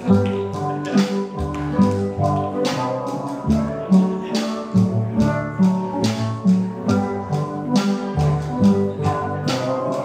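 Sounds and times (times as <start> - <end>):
steady percussion beat: 0.0 - 10.0
steel drum orchestra playing: 0.0 - 10.0.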